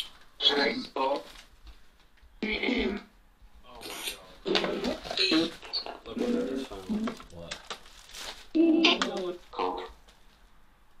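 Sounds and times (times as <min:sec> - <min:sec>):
choppy voice fragments from phone: 0:00.4 - 0:01.3, 0:03.8 - 0:07.3, 0:08.6 - 0:10.0.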